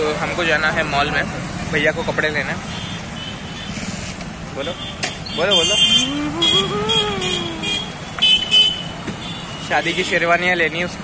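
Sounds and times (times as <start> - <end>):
street traffic noise: 0.0 - 11.0
person speaking: 5.6 - 8.0.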